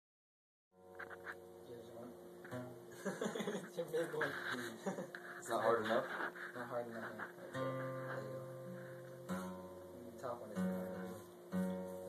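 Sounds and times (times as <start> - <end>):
guitar strings picked: 0.8 - 2.9, 3.6 - 12.0.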